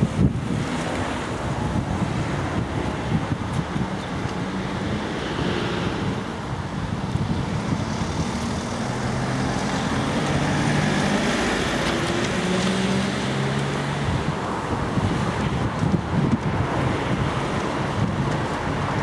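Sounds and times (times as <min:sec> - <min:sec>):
road traffic passing: 0:00.0 - 0:19.0
vehicle engine humming: 0:00.0 - 0:19.0
wind buffeting microphone: 0:00.0 - 0:19.0.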